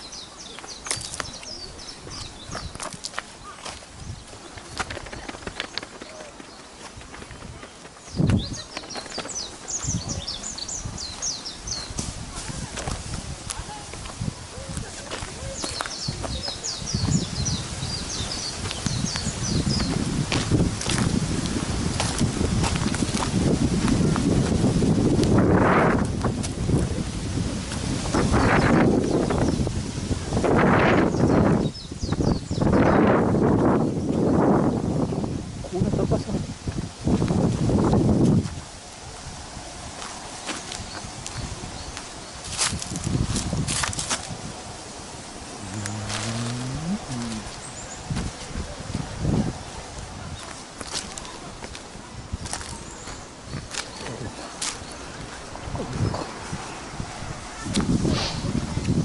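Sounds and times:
footsteps on dry leaves: 0:17.6 - 0:25.3, 0:39.9 - 0:44.4.

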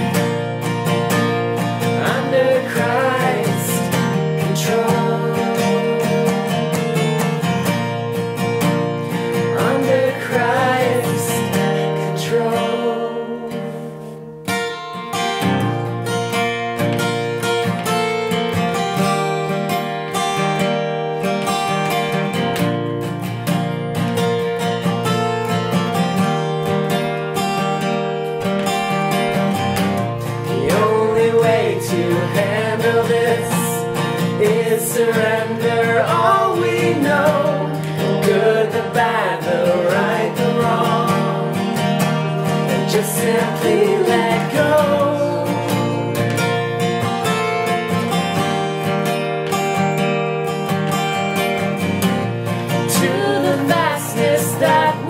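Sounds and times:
acoustic guitar strumming: 0:00.0 - 0:55.0
people singing: 0:01.6 - 0:07.9, 0:09.1 - 0:14.1, 0:30.2 - 0:46.9, 0:52.5 - 0:55.0.

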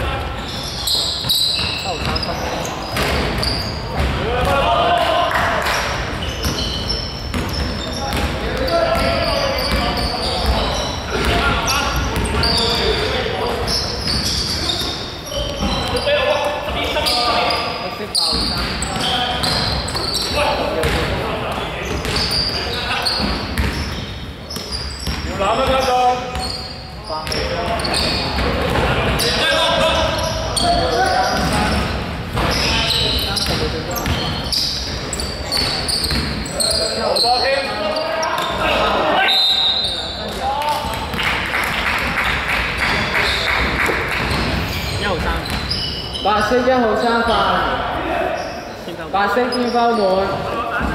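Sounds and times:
players' voices calling out: 0:00.0 - 0:50.9
basketball bouncing on court floor: 0:01.2 - 0:04.6, 0:06.1 - 0:16.0, 0:18.3 - 0:22.4, 0:23.1 - 0:26.6, 0:30.7 - 0:32.7, 0:33.3 - 0:36.5, 0:42.9 - 0:45.8.

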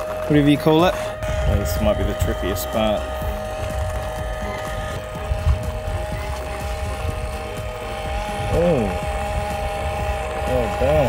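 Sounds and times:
small electric motor whining: 0:00.0 - 0:11.0
wind rumbling on microphone: 0:00.8 - 0:11.0.

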